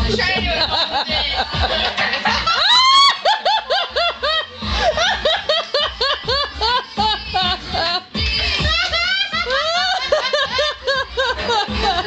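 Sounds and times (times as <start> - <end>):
high-pitched giggling laughter: 0.6 - 12.0.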